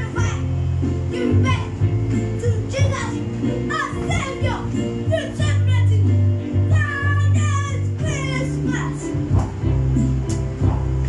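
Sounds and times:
electronic keyboard chords: 0.0 - 11.0.

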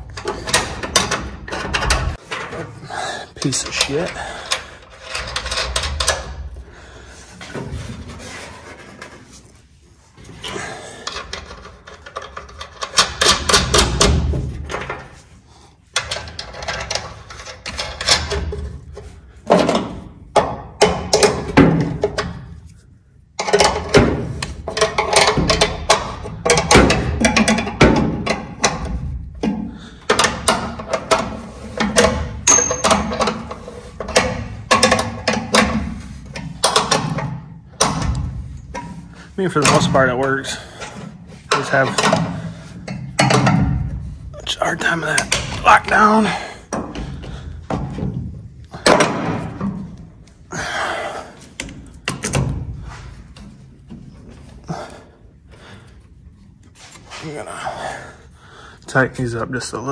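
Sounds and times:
metal clinks and knocks: 23.4 - 44.2.

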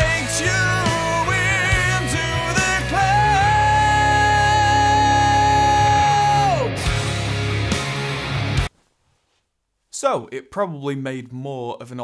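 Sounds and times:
man singing a long note: 0.0 - 6.7
rock band music: 0.0 - 8.7.

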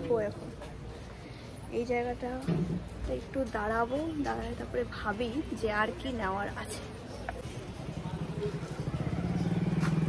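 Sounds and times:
motorcycle engine approaching: 7.4 - 10.0.

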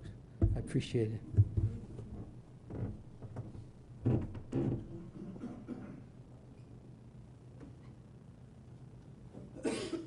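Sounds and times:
faint low hum: 0.0 - 10.0
person coughing: 5.1 - 6.1, 9.6 - 10.0.

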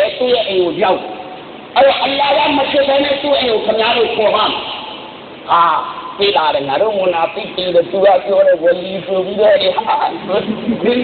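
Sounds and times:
low hiss: 0.0 - 11.0
person speaking: 0.0 - 11.0.

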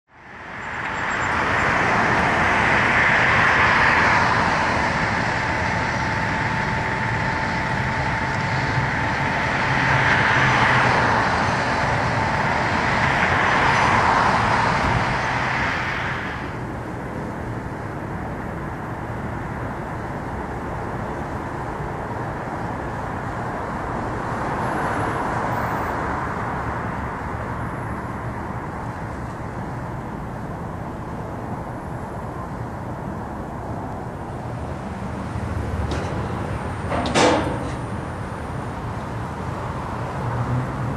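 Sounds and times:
traffic noise: 0.0 - 40.9
vehicles passing: 0.1 - 40.9
steady whine: 0.2 - 24.5, 27.2 - 40.2.

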